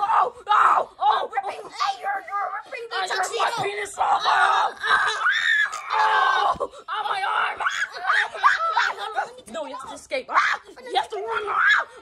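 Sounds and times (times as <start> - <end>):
children screaming and yelling: 0.0 - 12.0.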